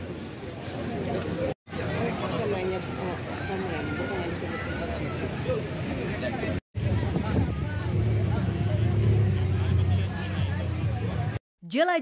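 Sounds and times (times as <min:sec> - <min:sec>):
people talking: 0:00.8 - 0:12.0.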